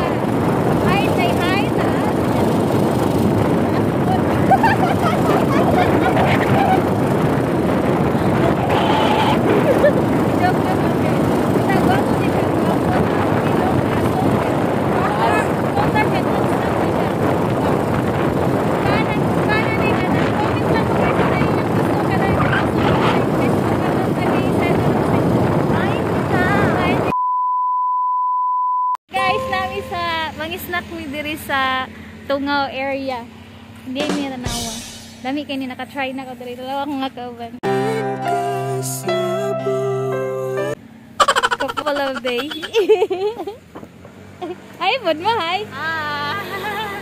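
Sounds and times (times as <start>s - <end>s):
vehicle noise: 0.0s - 27.1s, 29.1s - 47.0s
wind on microphone: 0.0s - 27.1s
faint voices: 8.0s - 17.7s.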